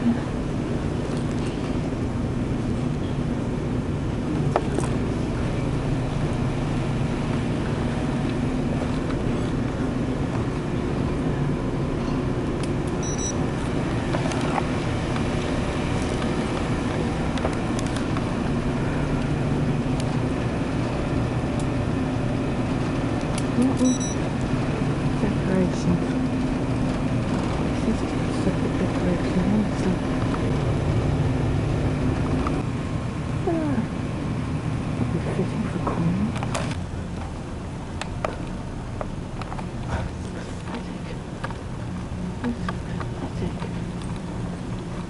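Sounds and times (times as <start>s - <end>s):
machinery and ventilation drone: 0.0s - 45.0s.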